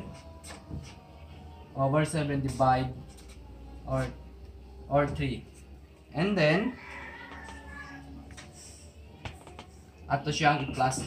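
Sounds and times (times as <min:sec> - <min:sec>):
faint high animal call: 0:06.7 - 0:08.2.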